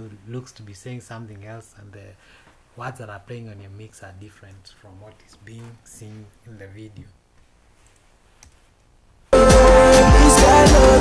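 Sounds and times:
faint room noise: 0.0 - 9.4.

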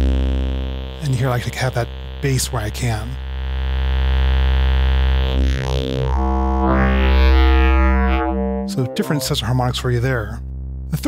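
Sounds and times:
low synthesizer drone: 0.0 - 11.0.

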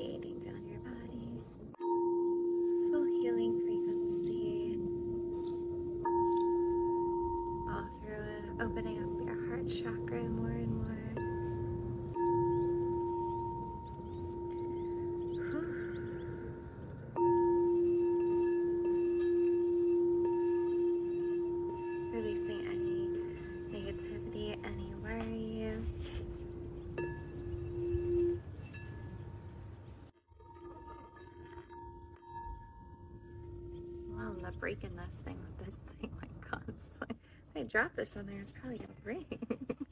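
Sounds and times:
singing bowl ringing: 0.0 - 29.8, 30.4 - 34.8.

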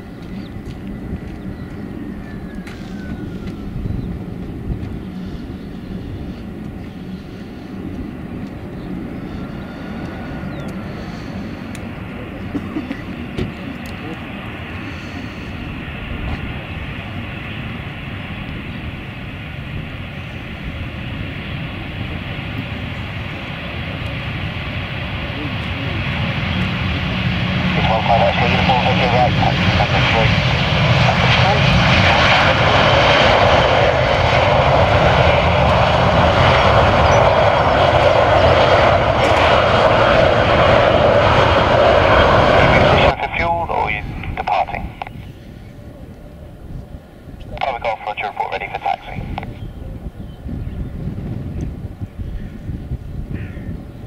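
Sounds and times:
jet engines roaring on take-off: 0.0 - 54.0.

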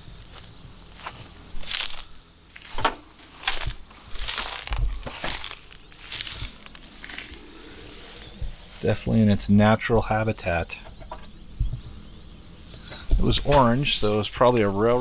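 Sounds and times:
footsteps crunching through dry grass: 0.0 - 9.2, 13.2 - 15.0.

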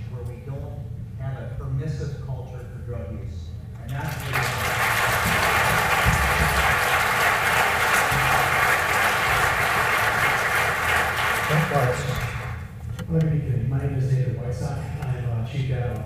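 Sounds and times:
audience applauding: 3.9 - 12.7.

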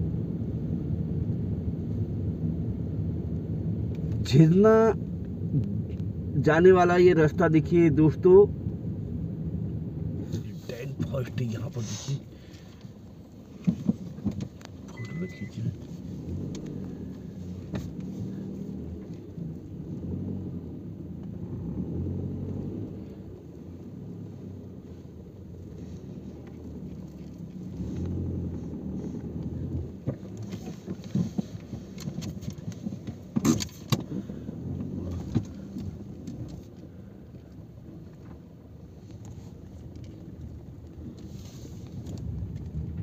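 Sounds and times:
vehicle engine rumbling: 0.0 - 43.0.

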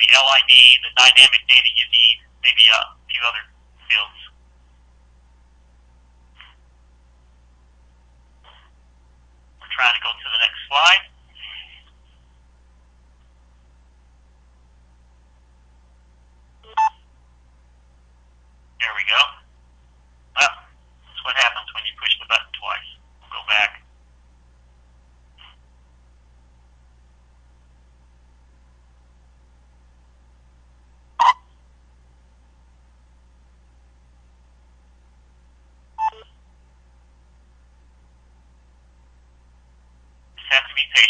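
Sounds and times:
man speaking over phone line: 0.0 - 4.4, 9.6 - 11.7, 18.8 - 19.5, 20.4 - 23.9, 40.4 - 41.0
tinny voice over telephone: 0.0 - 4.4, 9.6 - 11.9, 18.8 - 19.5, 20.4 - 23.9, 40.4 - 41.0
steady low hum: 0.0 - 41.0.

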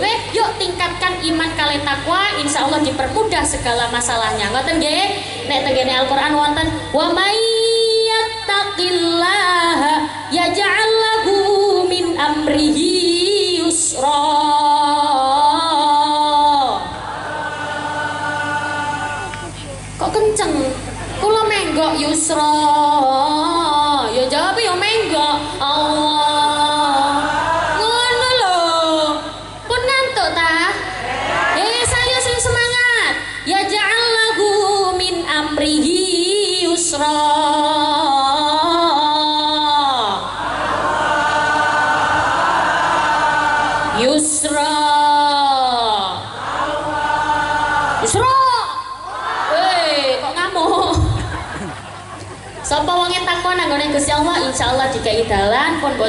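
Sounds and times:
woman singing into a microphone: 0.0 - 17.0, 18.8 - 31.0, 31.6 - 40.4, 43.9 - 46.4
woman chanting melodically: 0.0 - 42.1, 43.0 - 51.3, 52.6 - 56.0
several voices singing together: 16.7 - 19.6, 31.0 - 31.8, 40.4 - 44.0, 46.2 - 48.2.

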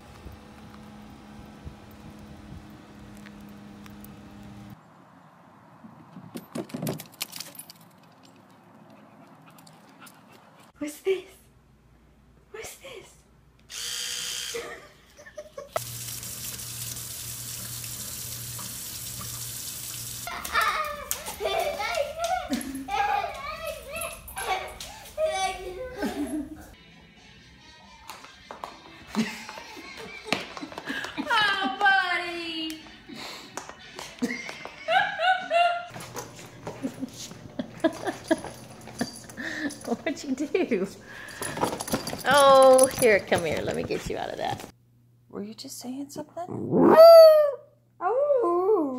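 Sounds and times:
electric toothbrush buzzing: 13.7 - 14.9, 15.8 - 20.3
water running into a sink: 15.8 - 20.3
people laughing: 20.3 - 23.4, 25.8 - 26.8, 27.7 - 31.8, 33.0 - 36.0, 36.6 - 40.0
voices: 31.0 - 34.7.

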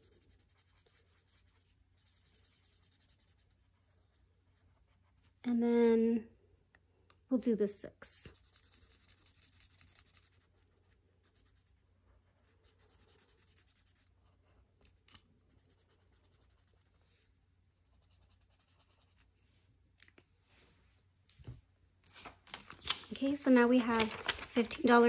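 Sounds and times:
marker scribbling on paper: 0.0 - 5.0, 8.3 - 11.8, 12.4 - 14.2, 15.5 - 17.2, 17.8 - 19.3.

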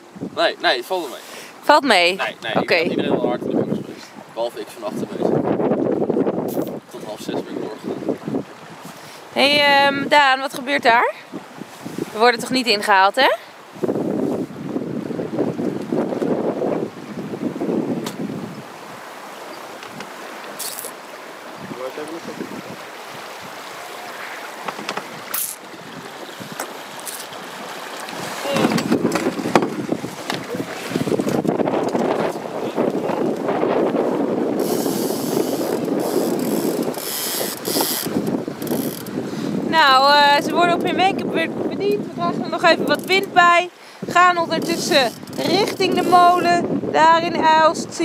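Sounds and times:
wind buffeting microphone: 0.0 - 0.6, 1.6 - 48.0
boat fittings clicking and knocking: 24.6 - 25.7, 28.6 - 30.5, 35.8 - 39.2, 44.6 - 46.0.

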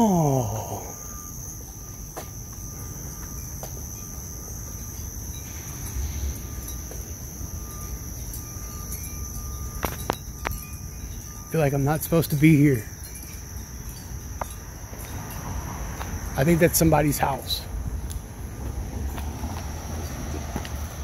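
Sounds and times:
crickets chirping: 0.0 - 21.0.

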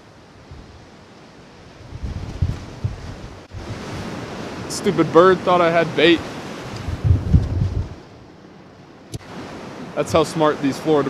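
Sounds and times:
surf breaking on shore: 0.0 - 8.3, 9.0 - 11.0
wind buffeting microphone: 0.4 - 1.0, 1.6 - 5.2, 6.2 - 8.2.

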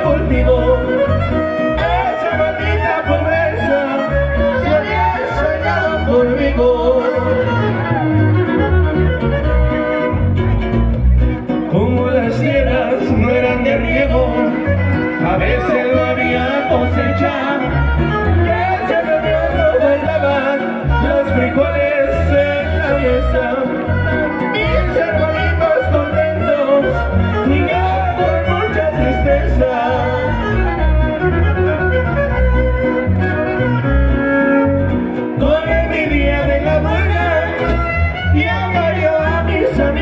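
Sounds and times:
fiddle melody: 0.0 - 40.0
guitar: 0.0 - 40.0
steady bass line: 0.0 - 40.0.

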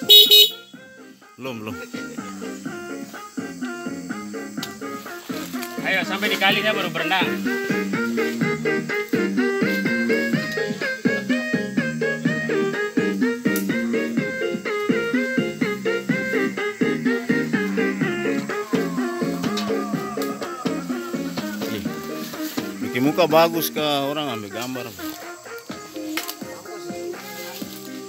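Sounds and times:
background music with beat: 0.0 - 28.0.

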